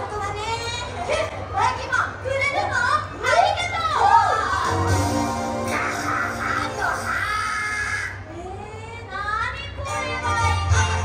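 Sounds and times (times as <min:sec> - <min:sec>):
background music: 0:04.3 - 0:07.4, 0:09.8 - 0:11.0
squeaky character voice speaking: 0:05.7 - 0:08.2.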